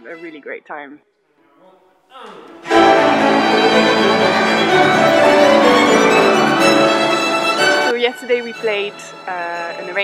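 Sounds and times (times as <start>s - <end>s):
string ensemble playing: 2.6s - 10.0s.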